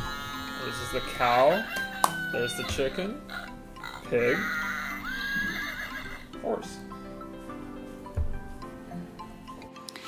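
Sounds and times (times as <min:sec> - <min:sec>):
background music: 0:00.0 - 0:10.0
recorded horse whinny from speaker: 0:05.1 - 0:06.3.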